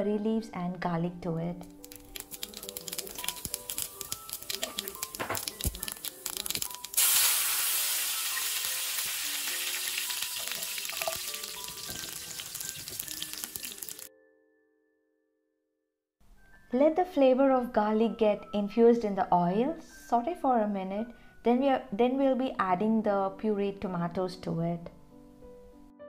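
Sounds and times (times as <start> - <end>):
seeds crackling and popping in oil: 1.6 - 14.1
loud sizzle in oil: 2.1 - 14.1.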